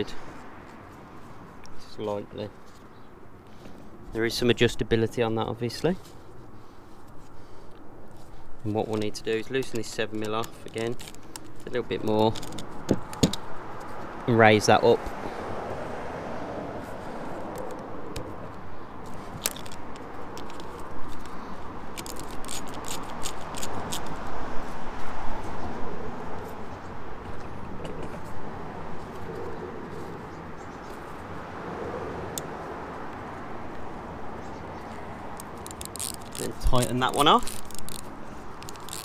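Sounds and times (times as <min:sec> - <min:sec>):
outdoor background noise: 0:00.0 - 0:39.0.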